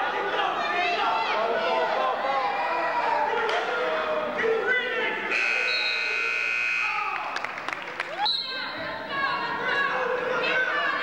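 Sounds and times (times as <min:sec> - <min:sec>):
crowd voices and shouting: 0:00.0 - 0:11.0
timing buzzer tone: 0:05.3 - 0:07.1.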